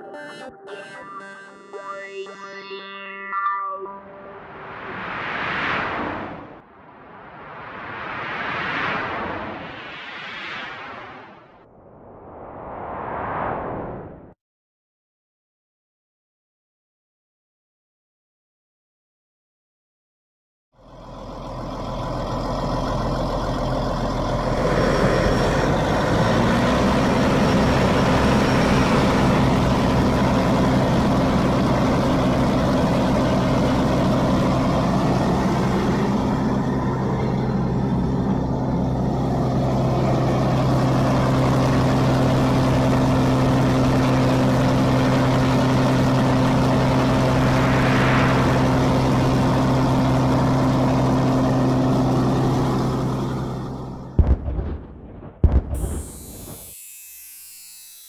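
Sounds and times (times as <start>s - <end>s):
tractor diesel engine under load: 20.8s - 54.3s.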